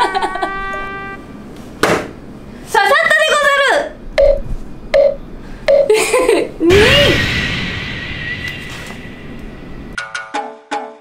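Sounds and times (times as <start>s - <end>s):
held pitched note: 0.4s - 1.2s.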